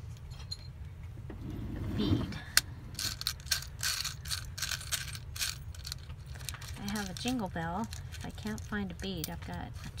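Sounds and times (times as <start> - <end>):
craft bits rattling in a drawer: 2.9 - 10.0.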